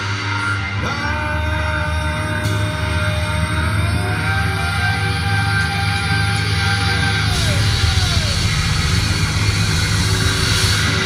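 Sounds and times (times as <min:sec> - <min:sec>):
low bass drone: 0:00.0 - 0:11.0
rock band sustained chord: 0:00.0 - 0:11.0.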